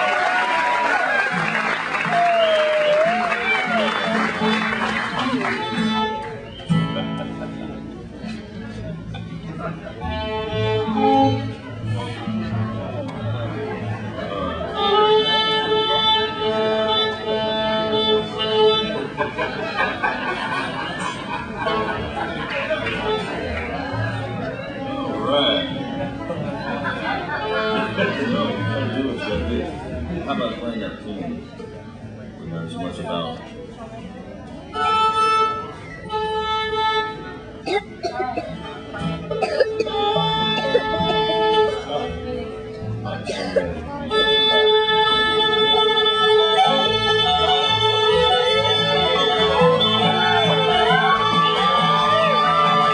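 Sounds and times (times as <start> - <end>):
fiddle bowing held notes: 10.0 - 12.4, 14.6 - 19.1, 34.7 - 37.6, 38.8 - 43.0, 44.0 - 52.9
plucked strings: 34.5 - 52.9
voices talking: 37.7 - 52.0.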